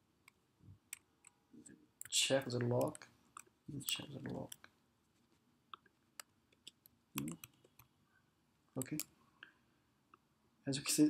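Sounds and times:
mouse and keyboard clicks: 6.2 - 7.9.

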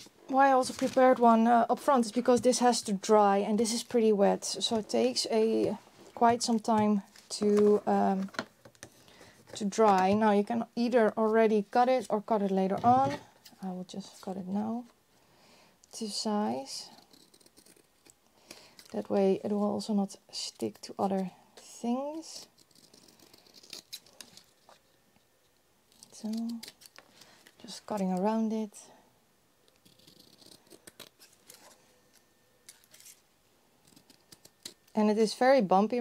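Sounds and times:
scissors snipping paper: 25.9 - 27.0, 29.7 - 31.7.

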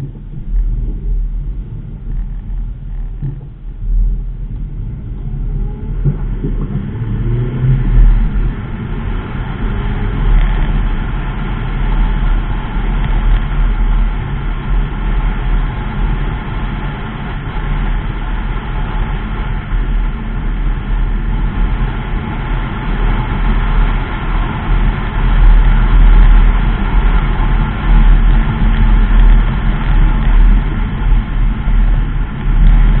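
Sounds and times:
car engine and tyre rumble: 0.0 - 33.0.

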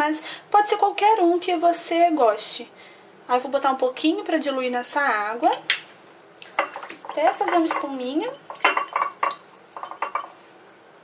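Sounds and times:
hand stirring water: 6.4 - 10.4
clinks against glass: 6.4 - 10.5.

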